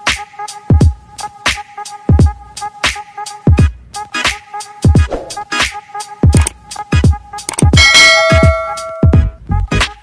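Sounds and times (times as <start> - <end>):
electronic music: 4.8 - 6.5.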